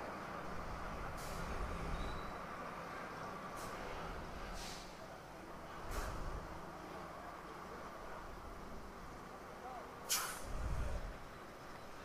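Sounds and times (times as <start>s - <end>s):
compressed air hiss from tyre inflator: 4.5s - 5.0s, 10.1s - 10.7s.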